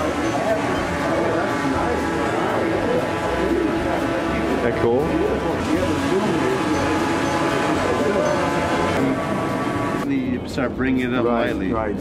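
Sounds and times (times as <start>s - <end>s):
drone propellers whining: 0.0s - 10.3s
voices talking: 0.0s - 11.9s.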